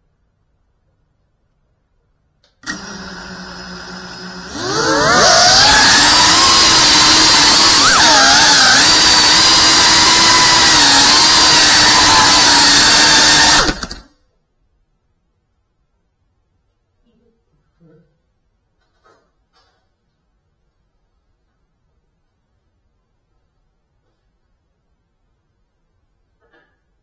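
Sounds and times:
drone motors whining: 0:02.6 - 0:14.1.

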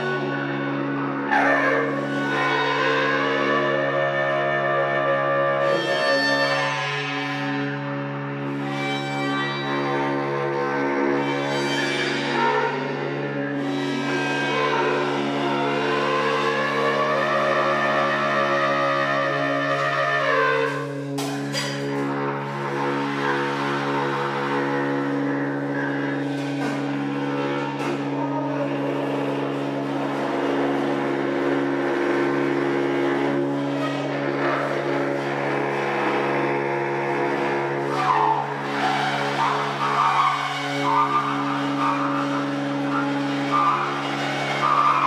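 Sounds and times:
bass clarinet line: 0:00.0 - 0:45.0
tuba drone: 0:00.0 - 0:45.0.

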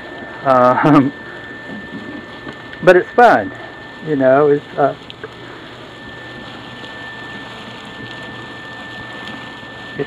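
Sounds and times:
insulation blower hissing: 0:00.0 - 0:10.0
thin high whine: 0:00.0 - 0:10.0.

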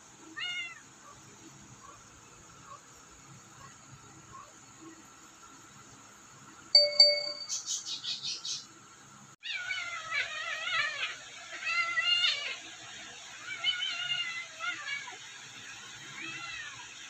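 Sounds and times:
bright ding: 0:06.8 - 0:07.5.

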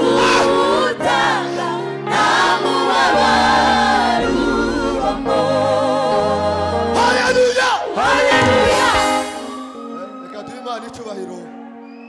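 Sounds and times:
group singing gospel: 0:00.0 - 0:10.0.

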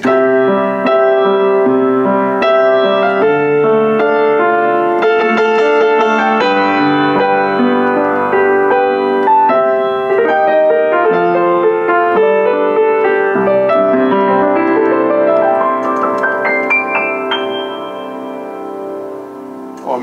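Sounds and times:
classical piano piece: 0:00.0 - 0:20.0.

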